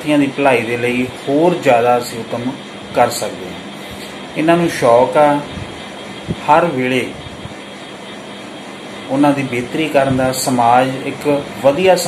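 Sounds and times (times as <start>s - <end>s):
machine running: 0.0s - 12.0s.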